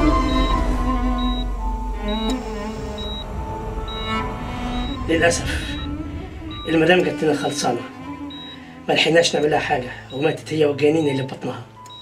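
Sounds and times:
heart monitor beeping: 0:00.0 - 0:01.5, 0:03.0 - 0:03.3, 0:03.9 - 0:04.2, 0:06.5 - 0:06.9, 0:08.3 - 0:08.6, 0:09.3 - 0:12.0
slow background music: 0:00.0 - 0:12.0.

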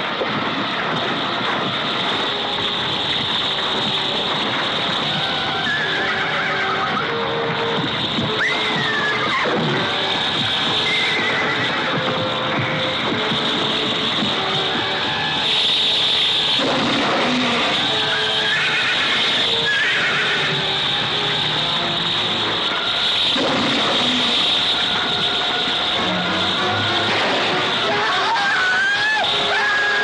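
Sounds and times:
orchestral film score: 0:00.0 - 0:30.0
monster high squeals: 0:08.4 - 0:10.0, 0:16.6 - 0:21.2, 0:26.0 - 0:30.0.

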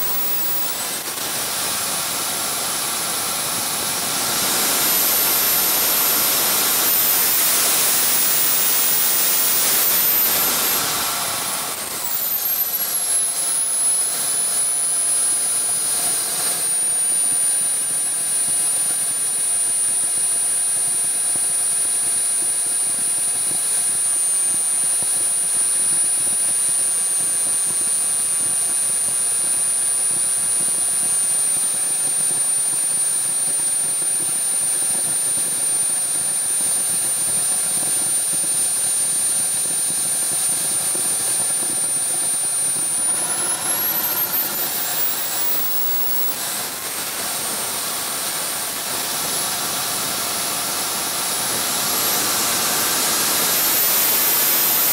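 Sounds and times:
model jet turbine whine: 0:00.0 - 0:54.9.

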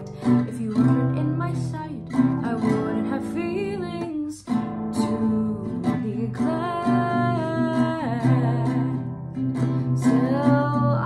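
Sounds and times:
nylon-string guitar: 0:00.0 - 0:11.0
woman singing: 0:00.0 - 0:11.0.

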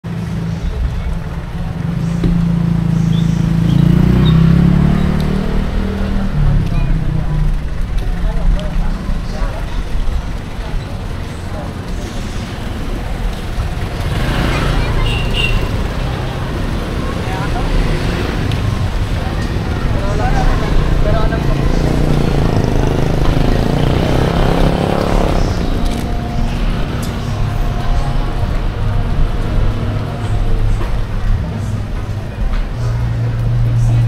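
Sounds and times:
vehicle engines passing: 0:00.0 - 0:34.0
people talking: 0:00.1 - 0:34.0.

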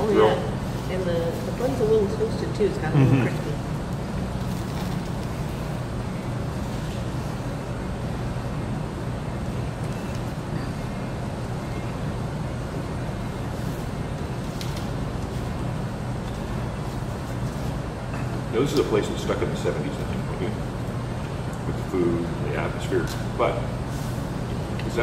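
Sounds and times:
low hum and rumble: 0:00.0 - 0:25.0.

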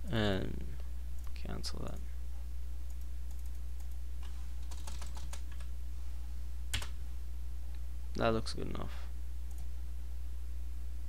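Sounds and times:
steady low hum: 0:00.0 - 0:11.0
typing on computer keyboard: 0:04.6 - 0:05.7.

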